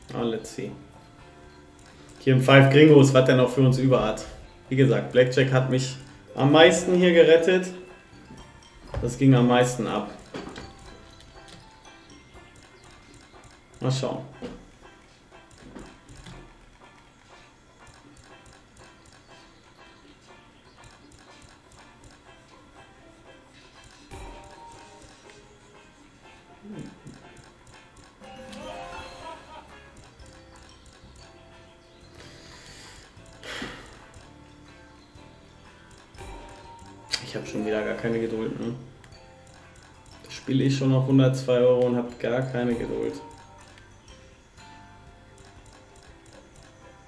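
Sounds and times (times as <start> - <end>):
slot machine background music: 0.0 - 47.0.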